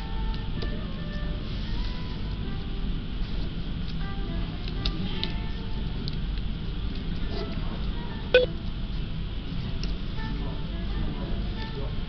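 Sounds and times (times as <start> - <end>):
light background music: 0.0 - 12.0
low room rumble: 0.0 - 12.0.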